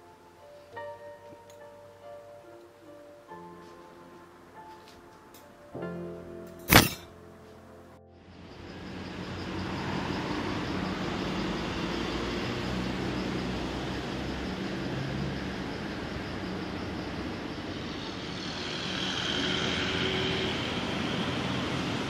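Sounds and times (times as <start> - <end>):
road traffic rumble: 8.6 - 22.0.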